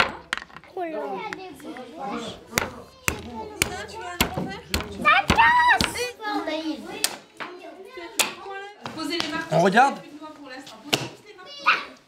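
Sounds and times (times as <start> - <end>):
children's voices: 0.0 - 8.8, 11.2 - 12.0
mallet cracking nuts on wood: 2.5 - 6.1.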